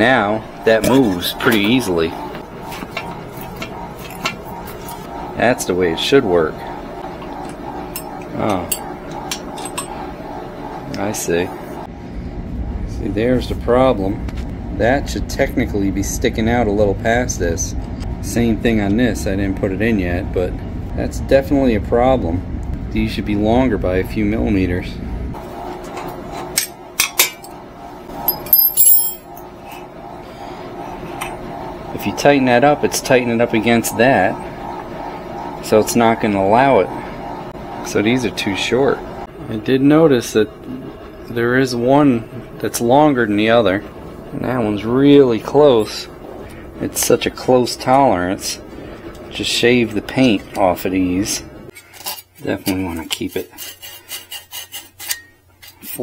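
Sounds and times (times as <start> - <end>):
ringing clink of metal: 28.3 - 29.3.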